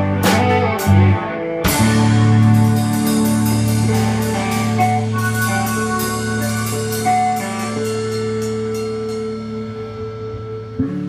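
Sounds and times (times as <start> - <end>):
guitar chord ringing out: 0.0 - 11.0
rock band playing: 0.0 - 11.0
cymbal strokes: 1.7 - 10.7.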